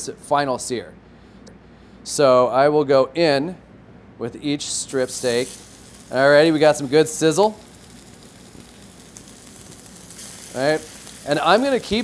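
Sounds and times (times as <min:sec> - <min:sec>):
steaks sizzling in a skillet: 0:05.0 - 0:12.0.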